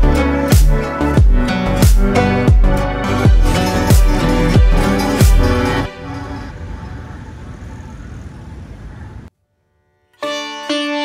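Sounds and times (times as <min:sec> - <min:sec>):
low road traffic noise: 0:03.6 - 0:09.3.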